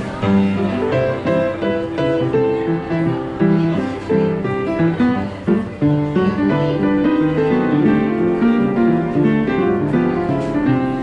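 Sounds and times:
upright piano tune: 0:00.0 - 0:11.0.

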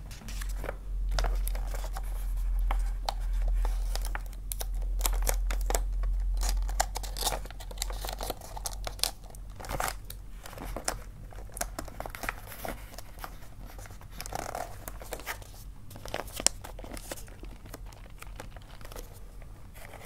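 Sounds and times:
low steady rumble: 0:00.0 - 0:20.0
wrapping paper crinkling: 0:00.0 - 0:20.0.

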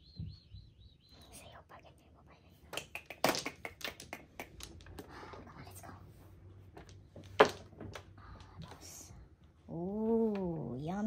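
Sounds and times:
mahjong tiles clacking: 0:02.8 - 0:05.9, 0:06.6 - 0:09.1.

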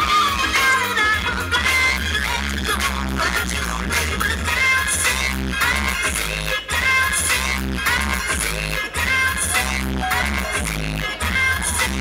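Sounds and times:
dance music over loudspeakers: 0:00.0 - 0:12.0.

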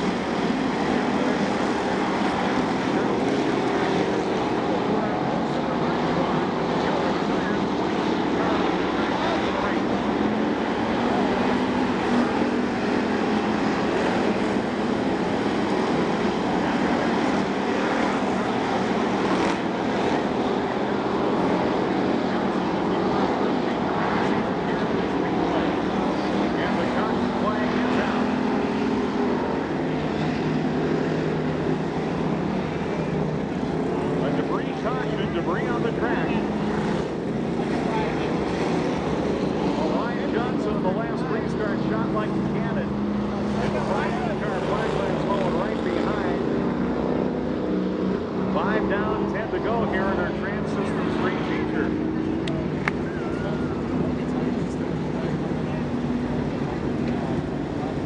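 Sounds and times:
crowd voices: 0:00.0 - 0:58.0
race car engines droning: 0:00.0 - 0:58.0.

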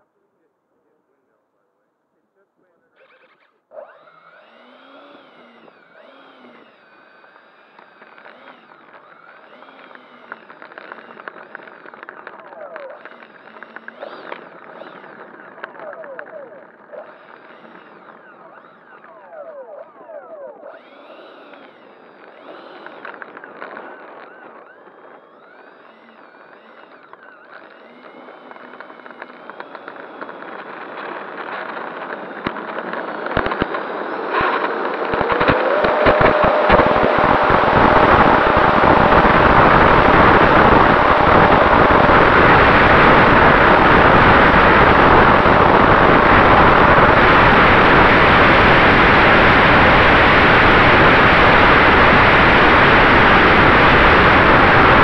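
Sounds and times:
electric ducted fans whining: 0:02.9 - 0:55.0
wind buffeting microphone: 0:29.6 - 0:55.0.

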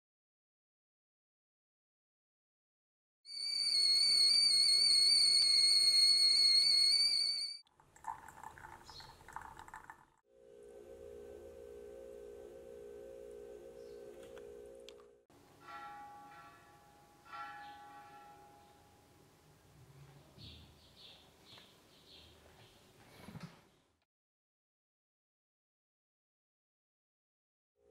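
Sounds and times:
kettle whistling: 0:03.3 - 0:07.6
ringing bell-like tones: 0:03.3 - 0:07.6, 0:10.4 - 0:19.1
steady low hum: 0:10.4 - 0:15.2.

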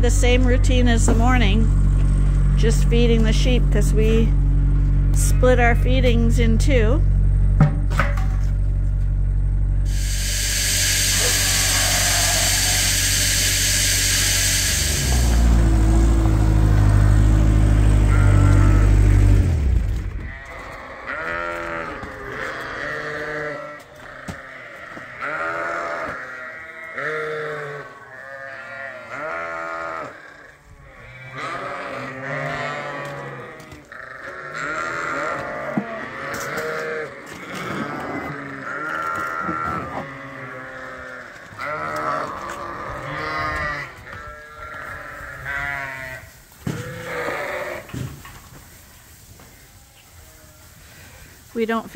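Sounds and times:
machine humming and hissing: 0:09.8 - 0:19.6
sheep bleating: 0:11.0 - 0:13.0, 0:17.9 - 0:19.2, 0:20.2 - 0:47.9.

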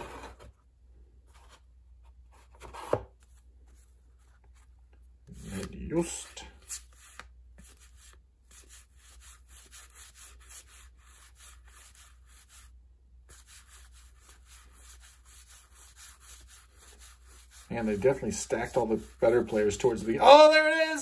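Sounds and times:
cards rubbing swishes: 0:05.3 - 0:12.7, 0:13.3 - 0:20.1.

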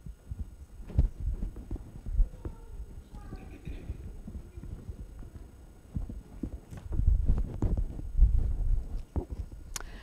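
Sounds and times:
low thuds and bumps: 0:00.3 - 0:09.6.

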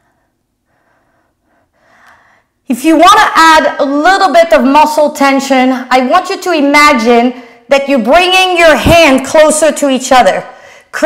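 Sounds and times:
soft breathing: 0:00.0 - 0:02.6.

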